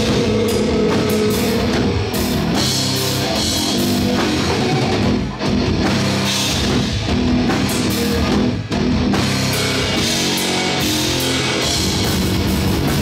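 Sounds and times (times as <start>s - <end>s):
distorted electric guitars: 0.0s - 13.0s
drum kit: 0.0s - 13.0s.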